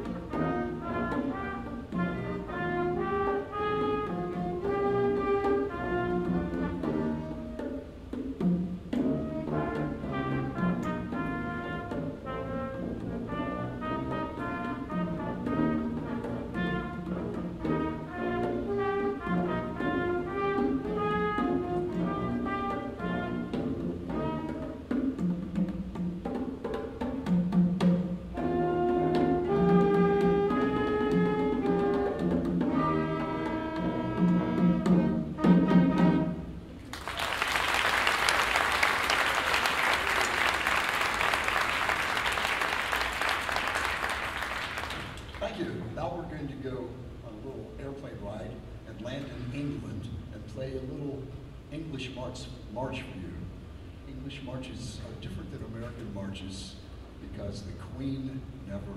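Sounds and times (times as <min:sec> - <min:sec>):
wind band playing: 0:00.0 - 0:08.1, 0:08.7 - 0:25.9, 0:28.1 - 0:47.2.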